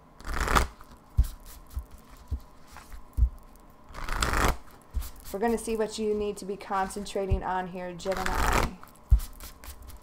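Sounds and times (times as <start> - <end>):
cards shuffling riffle: 0.2 - 3.2, 3.9 - 5.7.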